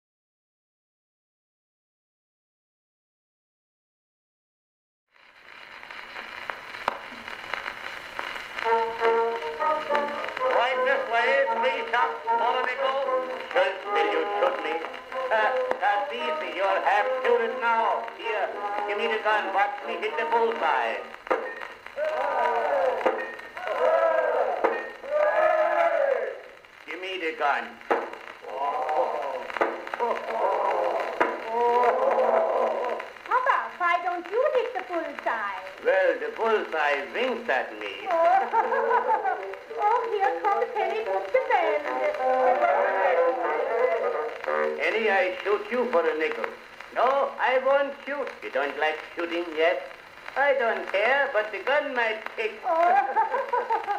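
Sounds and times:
phonograph surface hiss: 5.2s - 53.9s
recorded instrumental music: 5.3s - 53.9s.

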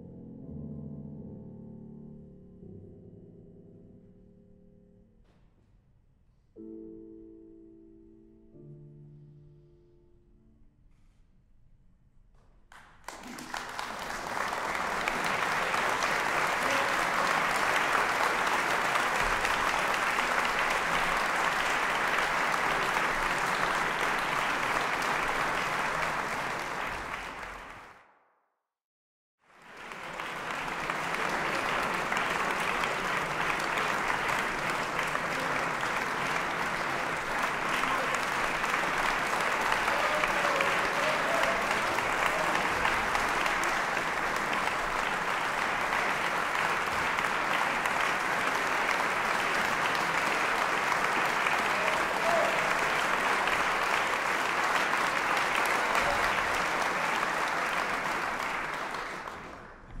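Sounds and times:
audience applauding: 12.7s - 28.0s, 29.5s - 60.0s.

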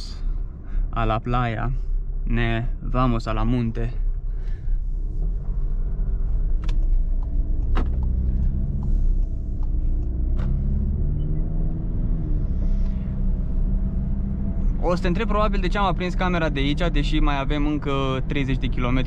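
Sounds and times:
car engine and road rumble: 0.0s - 19.0s.

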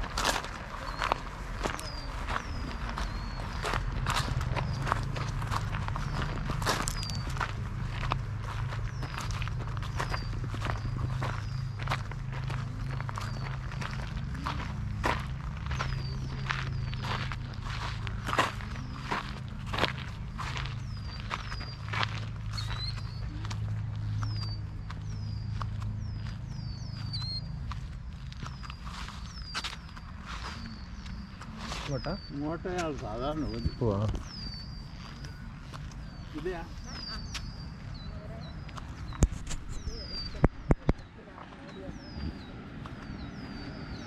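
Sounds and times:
birds chirping: 0.0s - 44.0s
footsteps crunching on gravel: 0.0s - 44.0s.

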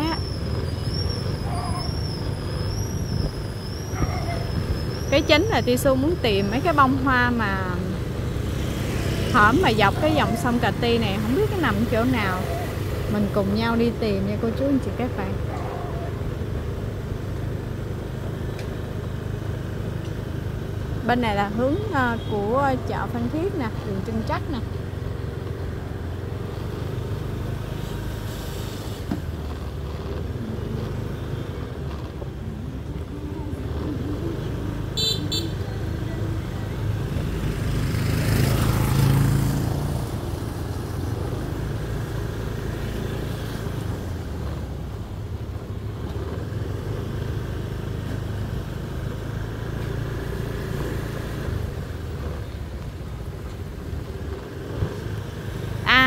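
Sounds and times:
street traffic rumble: 0.0s - 56.0s
vehicle passing close: 26.6s - 44.8s
car horn toot: 34.9s - 35.7s.

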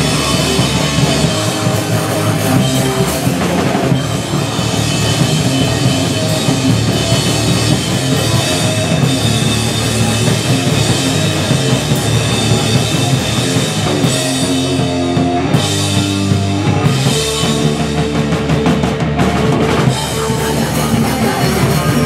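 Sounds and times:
punk band playing loud: 0.0s - 22.0s.

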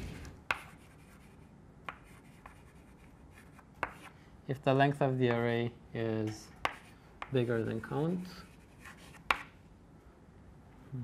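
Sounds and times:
chalk scraping: 0.0s - 4.2s, 6.6s - 9.5s
chalk tapping on blackboard: 0.4s - 4.2s, 6.6s - 9.6s.

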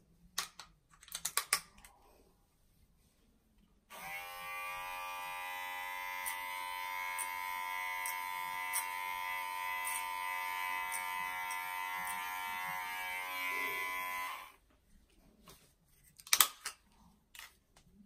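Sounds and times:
electric hair clippers buzzing: 3.9s - 14.6s.

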